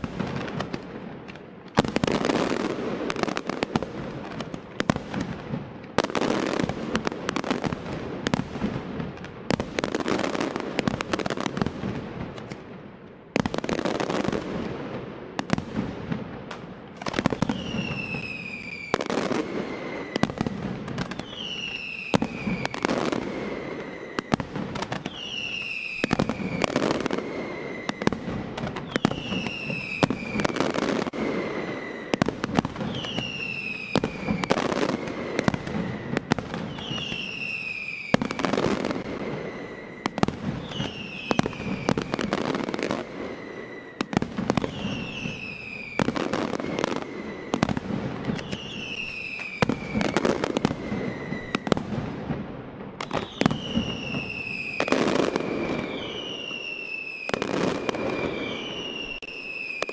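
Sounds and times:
falling whistle: 17.3 - 20.3, 21.2 - 24.4, 25.1 - 28.1, 28.8 - 32.2, 32.9 - 38.6, 39.4 - 42.3, 44.6 - 47.6, 48.4 - 51.7, 53.2 - 59.9.

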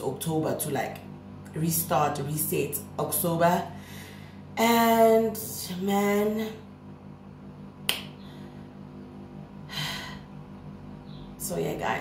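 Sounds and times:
faint low hum: 0.0 - 12.0
sharp snap-like click: 7.9 - 8.2.

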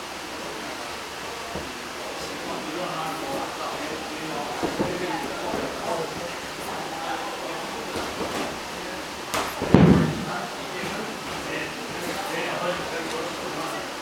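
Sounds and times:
indistinct chatter of people: 0.0 - 14.0
loud heavy thump: 9.3 - 10.4.

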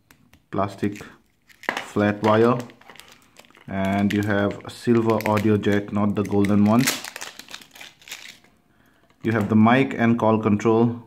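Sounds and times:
plastic packaging crinkling: 0.8 - 9.6.

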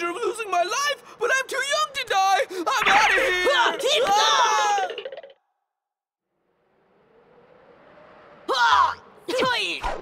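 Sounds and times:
cartoon character wailing cry: 2.7 - 5.0.

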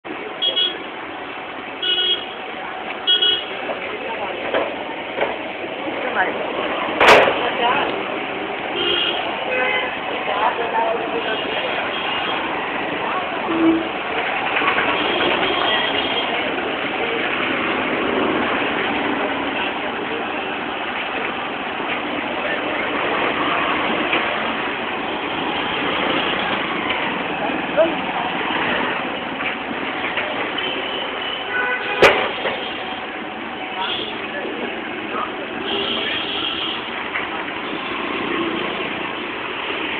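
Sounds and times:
street traffic noise: 0.0 - 39.9
vehicle engines running: 0.0 - 39.9
vehicle horn honking: 1.8 - 2.4, 8.8 - 10.0, 30.6 - 32.8, 35.6 - 36.9.

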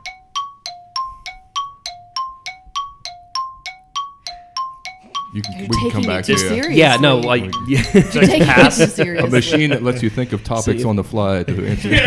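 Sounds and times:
two-note bell chime: 0.0 - 8.7.

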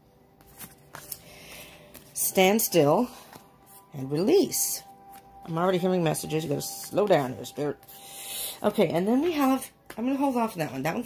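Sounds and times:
faint background music: 0.0 - 11.0
cards being shuffled: 0.4 - 2.5.

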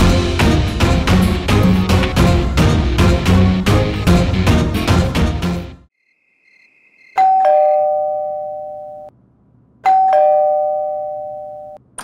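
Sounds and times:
doorbell ding-dong chime: 7.2 - 9.1, 9.8 - 11.8.

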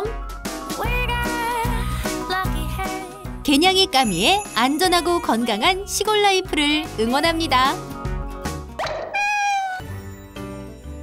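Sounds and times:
light background music: 0.0 - 9.0
cat meow: 9.1 - 9.9.

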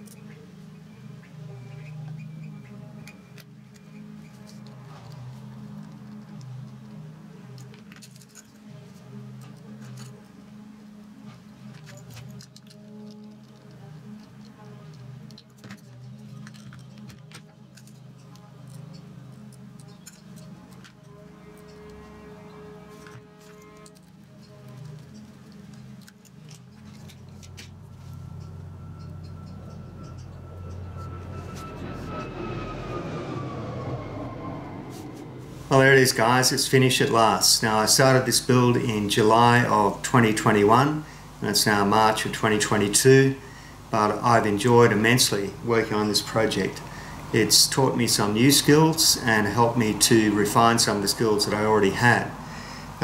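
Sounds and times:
background music: 0.0 - 53.0
aircraft flying past: 3.9 - 7.5, 19.0 - 25.9, 26.5 - 38.5, 42.2 - 53.0
screwdriver clinking on metal parts: 7.5 - 10.3, 11.6 - 21.8, 23.0 - 30.8.

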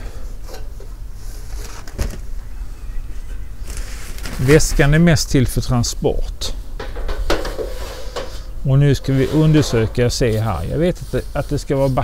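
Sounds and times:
fabric bag rustling: 3.6 - 4.8.

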